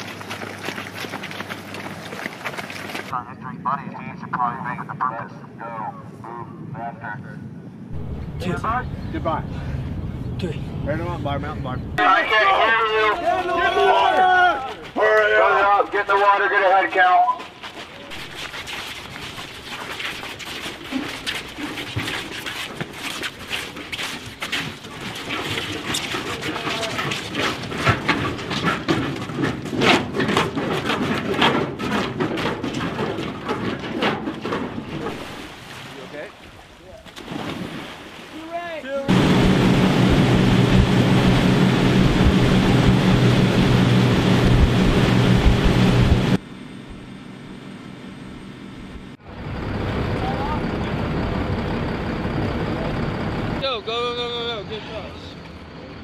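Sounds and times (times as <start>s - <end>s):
boat engine running: 7.9s - 12.0s, 39.1s - 54.7s
people shouting: 12.0s - 17.4s
water splashing: 17.4s - 27.8s, 34.9s - 46.4s.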